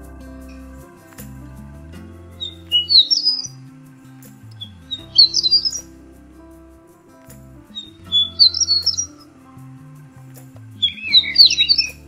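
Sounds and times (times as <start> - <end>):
soft background music: 0.0 - 12.0
songbird singing: 0.0 - 12.0.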